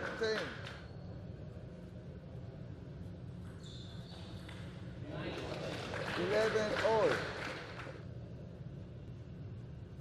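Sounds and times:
spectators cheering and clapping: 0:05.3 - 0:08.0.

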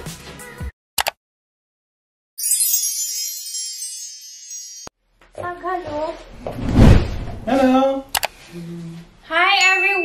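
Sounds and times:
sparkly bell-like chime: 0:02.4 - 0:05.0, 0:09.6 - 0:10.0.

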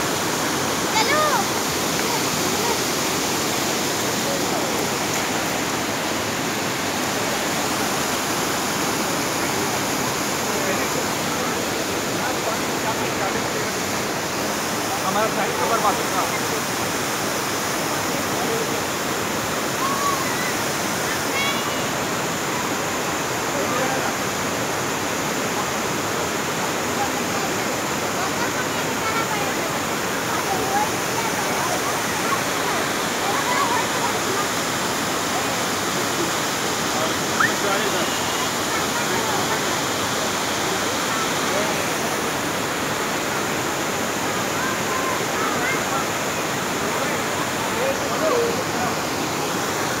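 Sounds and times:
waterfall rushing: 0:00.0 - 0:50.0
faint voices of people: 0:00.1 - 0:50.0.

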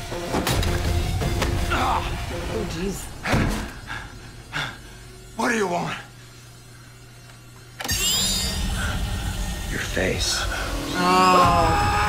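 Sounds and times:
high whines gliding upward: 0:07.2 - 0:12.0.

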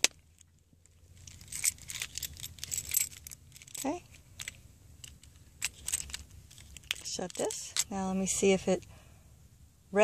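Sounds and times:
light plastic clicks and rustling: 0:00.0 - 0:08.0.

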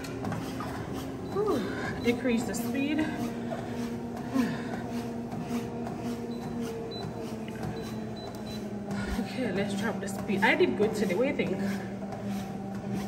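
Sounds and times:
footfalls on treadmill belt: 0:00.0 - 0:10.6
treadmill motor hum: 0:00.0 - 0:13.0.

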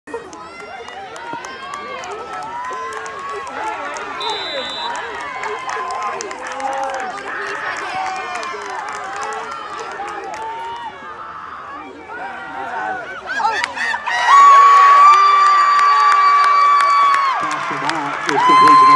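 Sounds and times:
voices talking and calling out: 0:00.1 - 0:14.8
high steady whistle: 0:04.2 - 0:05.0.

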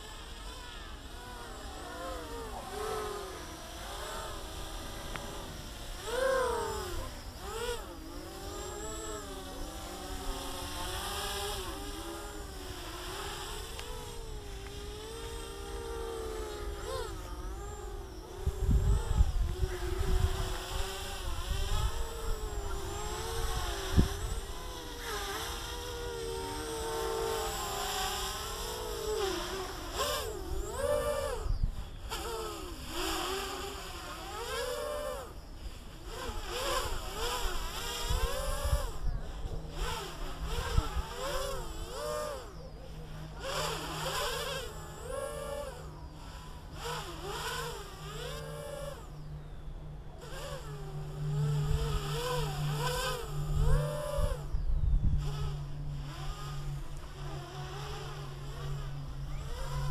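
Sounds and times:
quadcopter propellers buzzing: 0:00.0 - 0:59.9.

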